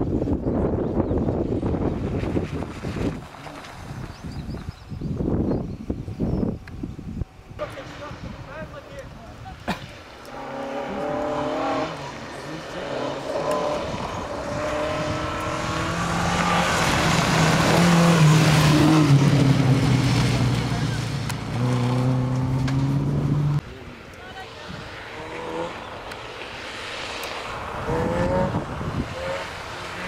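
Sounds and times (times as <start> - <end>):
rally car engine revving: 10.2 - 23.7, 24.8 - 26.2, 27.6 - 30.0
tyres spraying gravel: 16.2 - 23.0.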